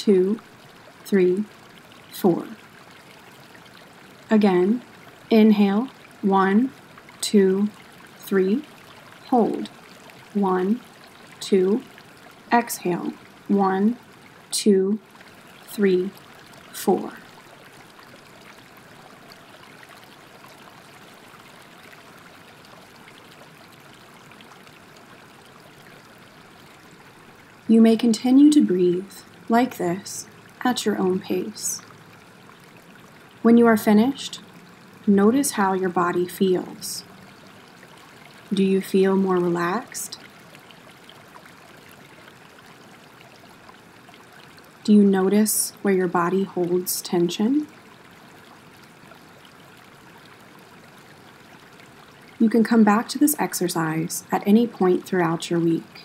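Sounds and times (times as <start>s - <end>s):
stream water flowing: 0.0s - 56.0s.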